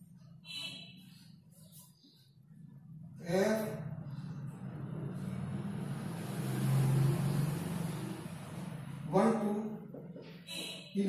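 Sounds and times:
motor vehicle rumble: 3.8s - 9.1s.

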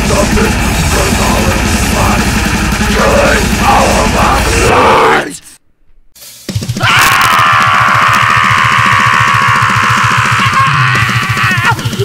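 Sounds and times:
fast drumming: 0.0s - 4.7s, 6.3s - 12.0s
distorted metal guitars: 0.0s - 5.4s.

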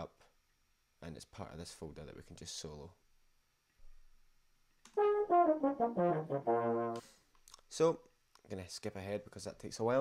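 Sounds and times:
euphonium and baritone horn: 5.0s - 7.1s.

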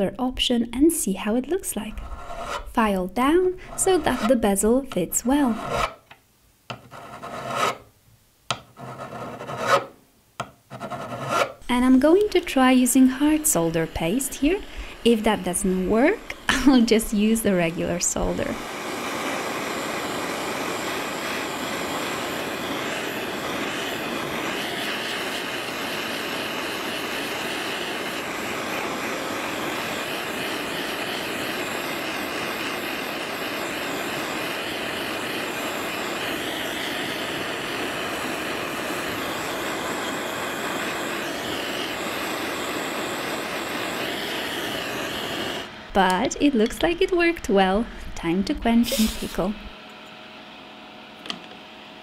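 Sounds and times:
soldering torch flame hiss: 0.8s - 6.0s, 10.8s - 49.8s.

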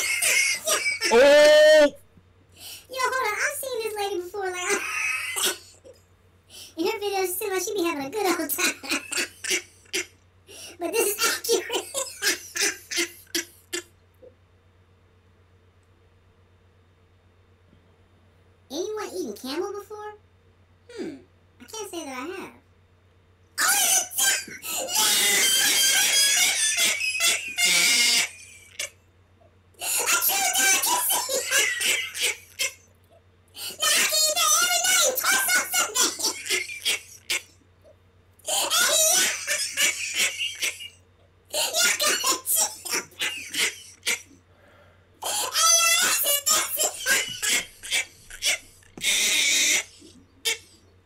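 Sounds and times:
man's stifled laugh: 0.0s - 1.9s
person squealing: 0.0s - 2.0s, 24.6s - 28.8s
person shrieking: 0.9s - 2.0s.

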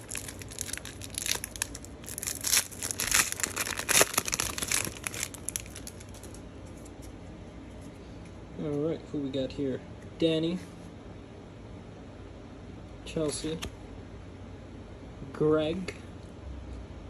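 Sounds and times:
foil wrapper crinkling and tearing: 0.0s - 6.9s.

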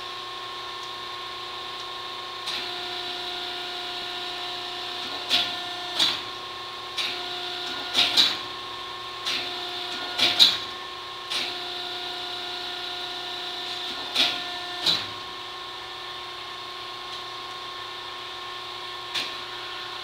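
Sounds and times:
sharp machine clacks: 9.3s - 10.6s.

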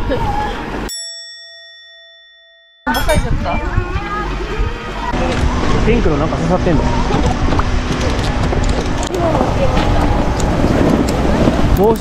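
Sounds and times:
outdoor noise: 0.0s - 12.0s
bell-like ding: 0.9s - 3.6s.

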